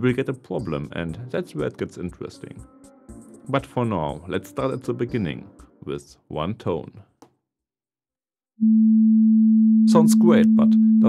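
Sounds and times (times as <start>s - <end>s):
pure sine tone: 8.6s - 11.0s.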